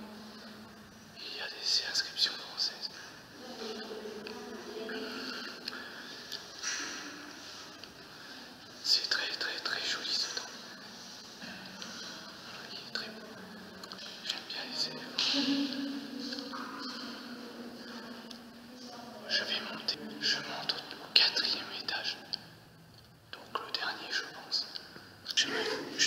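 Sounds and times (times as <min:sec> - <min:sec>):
person whispering: 0:00.0 - 0:22.4, 0:23.3 - 0:26.0.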